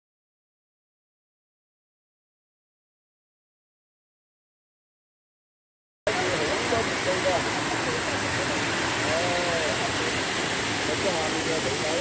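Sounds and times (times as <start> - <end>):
water rushing over a weir: 6.1 - 12.0.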